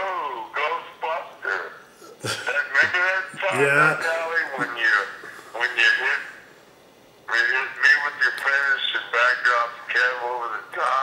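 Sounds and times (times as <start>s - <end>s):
man's voice through phone speaker: 0.0s - 6.4s, 7.3s - 11.0s.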